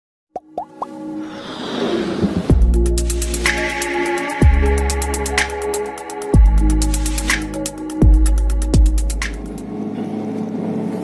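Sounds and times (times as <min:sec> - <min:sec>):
swelling riser with held tones: 0:00.9 - 0:11.0.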